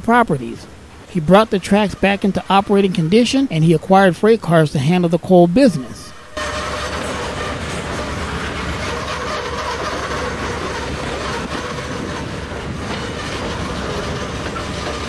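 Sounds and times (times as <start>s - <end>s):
train wheels rolling on rails: 6.3s - 15.0s.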